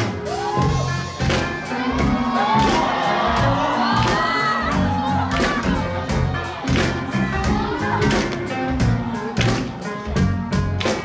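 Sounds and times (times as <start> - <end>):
audience cheering and shouting: 0.0 - 11.0
live rock band playing: 0.0 - 11.0.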